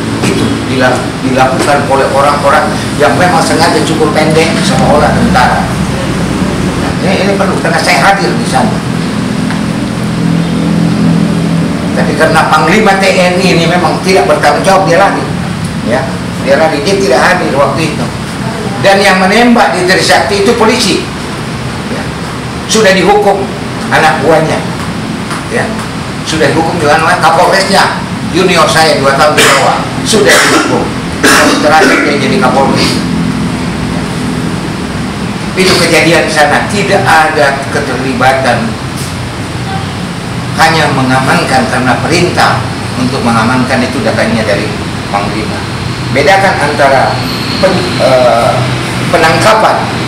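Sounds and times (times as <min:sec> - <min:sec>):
steady rushing noise: 0:00.0 - 0:50.0.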